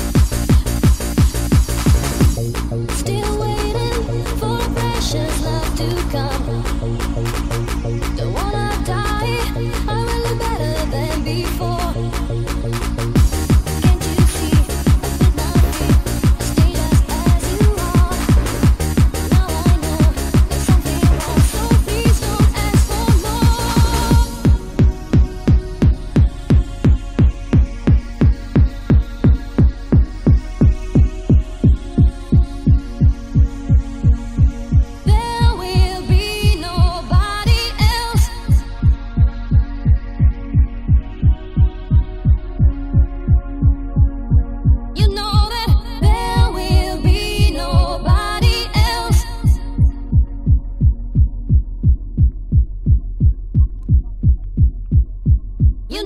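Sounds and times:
electronic dance music: 0.0s - 56.0s
steady kick drum: 0.0s - 56.0s.

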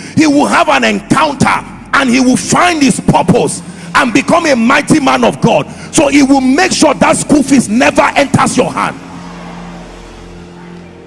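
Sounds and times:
held chord of background music: 0.0s - 11.0s.

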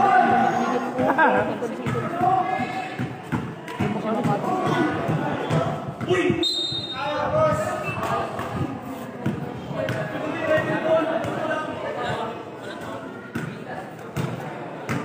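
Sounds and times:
people talking and calling out: 0.0s - 15.0s
basketball bouncing on concrete: 1.0s - 6.4s, 8.4s - 11.4s.

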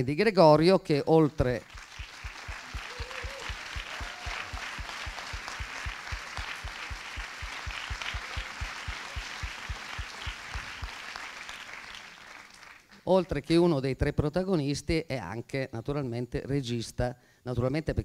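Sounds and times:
audience applauding: 1.5s - 13.1s
low steady beat: 2.2s - 10.7s.

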